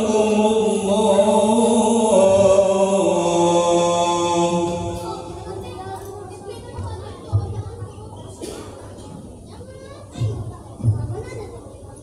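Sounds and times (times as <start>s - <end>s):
person chanting religious recitation: 0.0s - 5.7s.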